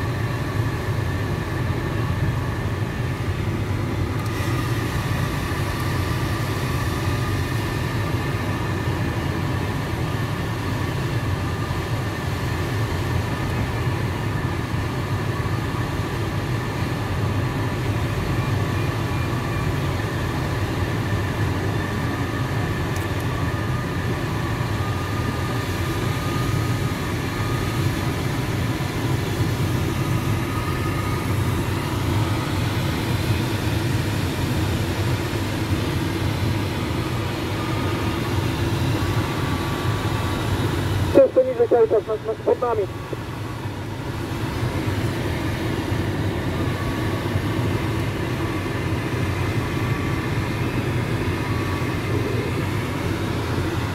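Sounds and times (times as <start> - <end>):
rushing airflow in cockpit: 0.0 - 53.9
faint high whine: 39.1 - 43.9.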